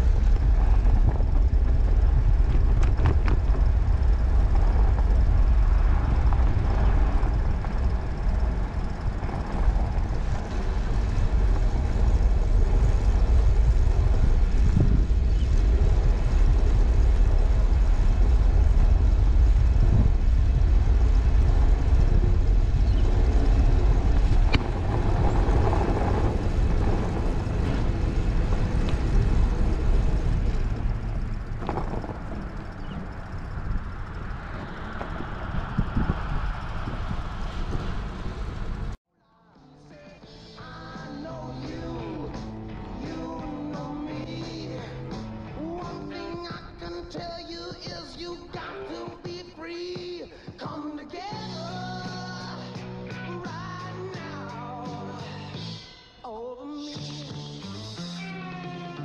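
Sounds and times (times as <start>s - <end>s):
bicycle tyres rolling on snow: 0.0s - 39.0s
wind buffeting microphone: 0.0s - 39.0s.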